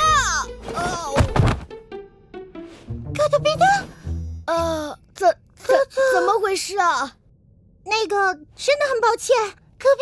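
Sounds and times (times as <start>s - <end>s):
cartoon thunk: 0.7s - 1.7s.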